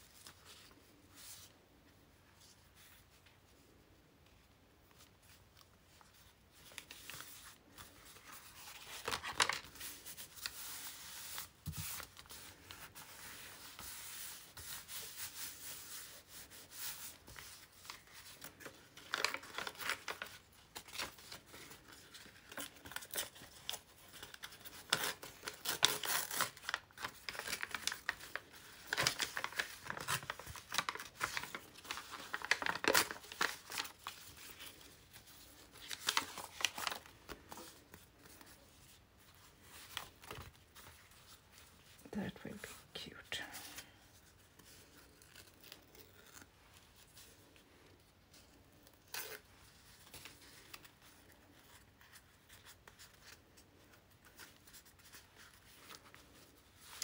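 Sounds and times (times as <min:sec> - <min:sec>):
paper rustling and tearing: 0:06.6 - 0:42.0, 0:44.5 - 0:47.5.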